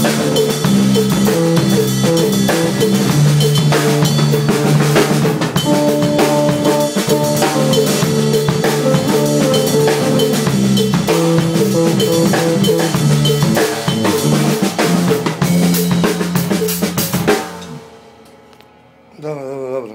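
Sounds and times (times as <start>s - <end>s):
funk drum kit groove: 0.0s - 17.9s
bass line: 0.0s - 18.2s.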